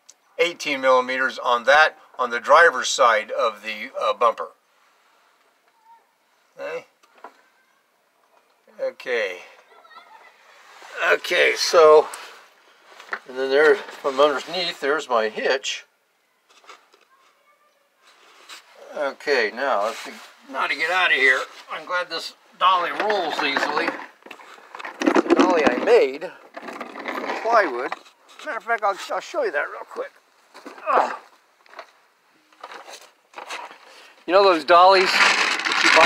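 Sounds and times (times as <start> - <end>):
faint scuffs and rustles: 10.2 - 14.8, 16.4 - 19.0, 19.7 - 21.9, 27.5 - 29.4.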